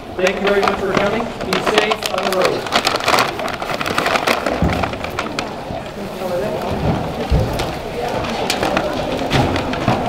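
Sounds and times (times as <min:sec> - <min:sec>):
overlapping chatter: 0:00.0 - 0:10.0
rustling of coats and bags: 0:00.0 - 0:10.0.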